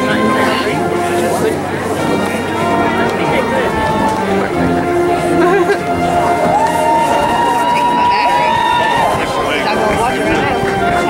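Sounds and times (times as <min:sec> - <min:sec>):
music with long held notes: 0:00.0 - 0:11.0
people talking: 0:00.0 - 0:11.0.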